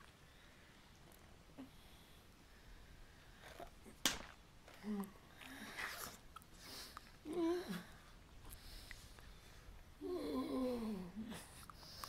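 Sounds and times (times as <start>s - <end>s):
person whimpering: 7.2s - 8.0s, 10.0s - 11.5s.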